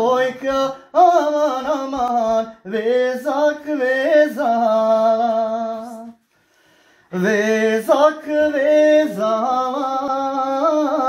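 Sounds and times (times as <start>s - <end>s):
man singing unaccompanied: 0.0s - 6.2s, 7.1s - 11.0s.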